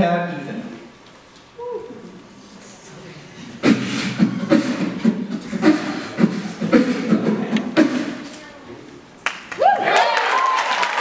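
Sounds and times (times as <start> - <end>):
beatboxing into a microphone: 3.4 - 8.5.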